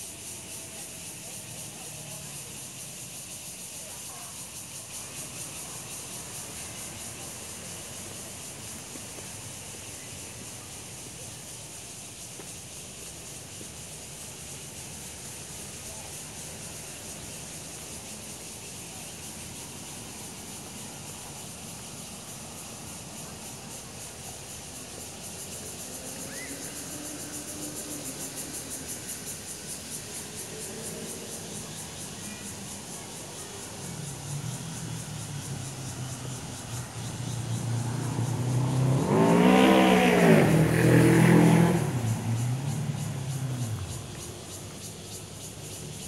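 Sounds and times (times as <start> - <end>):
motor vehicle engine passing: 33.8 - 45.1.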